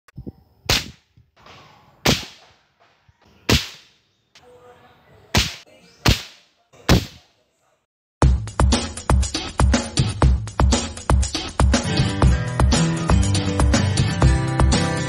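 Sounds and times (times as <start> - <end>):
speargun snap: 0.7 - 1.0.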